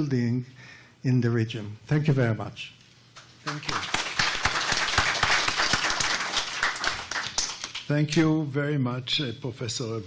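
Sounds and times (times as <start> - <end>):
audience applauding: 3.5 - 7.9.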